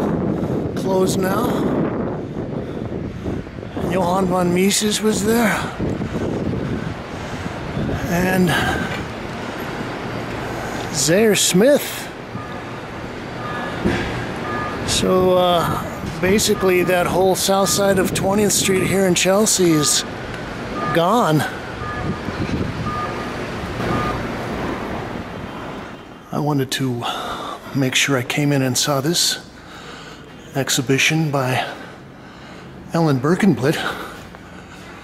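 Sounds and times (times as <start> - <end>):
city traffic rumble: 0.0 - 35.0
short high beeps: 13.4 - 14.9.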